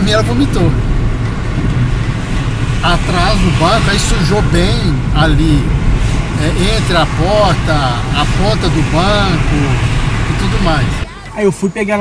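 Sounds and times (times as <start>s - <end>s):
car engine low rumble: 0.0s - 12.0s
road noise: 0.0s - 12.0s.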